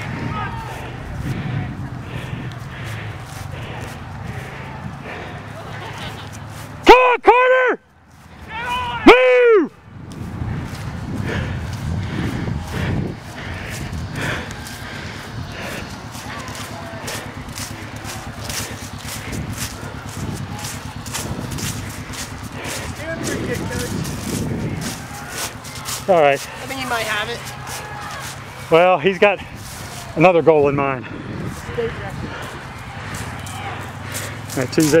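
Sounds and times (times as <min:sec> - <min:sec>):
footsteps on grass: 0:00.0 - 0:06.9, 0:07.9 - 0:09.1, 0:09.8 - 0:35.0
handheld camera rumble: 0:00.0 - 0:06.9, 0:07.8 - 0:35.0
distant people shouting: 0:00.0 - 0:09.9, 0:10.6 - 0:35.0.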